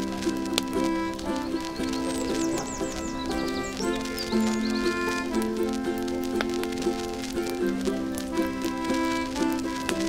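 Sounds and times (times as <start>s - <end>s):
concertina playing blues chords: 0.0s - 10.0s.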